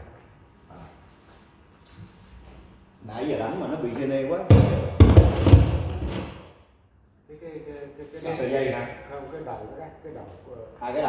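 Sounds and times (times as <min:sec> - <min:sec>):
heavy thumps and knocks: 0:04.5 - 0:06.4.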